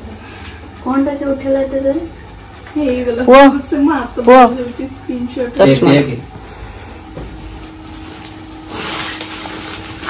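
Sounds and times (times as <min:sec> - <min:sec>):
gift bag rustling: 0:07.4 - 0:10.0.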